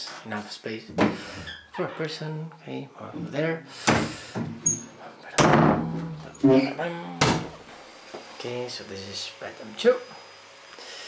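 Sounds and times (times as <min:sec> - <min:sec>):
closet door banging shut: 0:05.4 - 0:06.5, 0:07.2 - 0:07.6.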